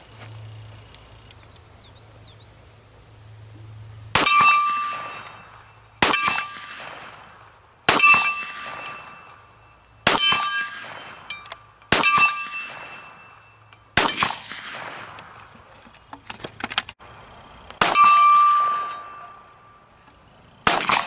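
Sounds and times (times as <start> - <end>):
steel target ringing: 4.2 - 7.1, 7.9 - 14.3, 17.8 - 19.8
gunshot echo: 14.0 - 15.4, 17.8 - 19.4, 20.6 - 21.0.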